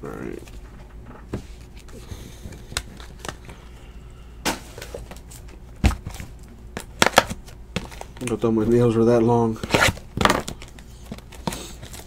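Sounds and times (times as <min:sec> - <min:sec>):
cards and box tapping and clicking: 0:04.5 - 0:08.4, 0:09.6 - 0:12.0.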